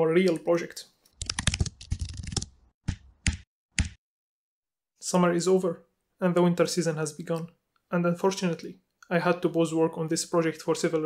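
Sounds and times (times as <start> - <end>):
keyboard typing: 1.1 - 4.0.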